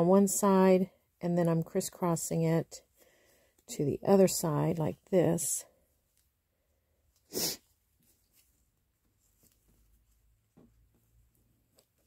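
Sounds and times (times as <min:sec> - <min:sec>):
sharp burst of breath: 0:07.3 - 0:07.6
fabric rustling: 0:07.6 - 0:12.0.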